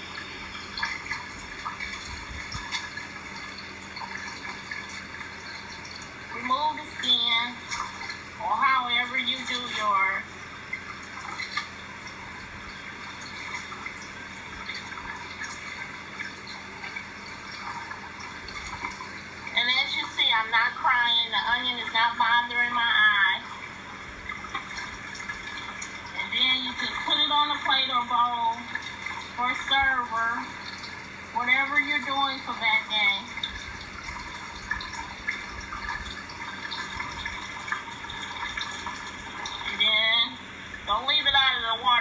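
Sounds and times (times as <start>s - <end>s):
person talking: 6.4s - 7.6s, 8.4s - 10.3s, 19.6s - 23.5s, 26.2s - 28.7s, 29.4s - 30.5s, 31.4s - 33.4s, 39.6s - 42.0s.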